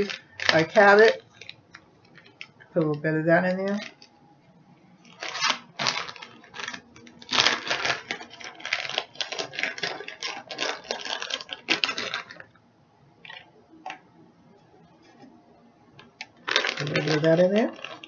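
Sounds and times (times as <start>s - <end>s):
plastic bag crinkling: 0.0s - 4.2s, 5.0s - 12.6s, 13.2s - 14.0s, 16.0s - 18.0s.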